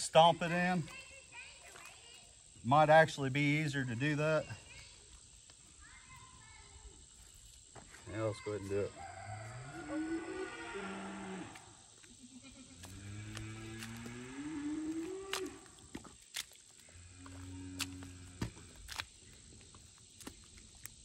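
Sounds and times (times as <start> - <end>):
cow mooing: 9.4 - 11.7, 12.8 - 15.7, 16.9 - 18.4.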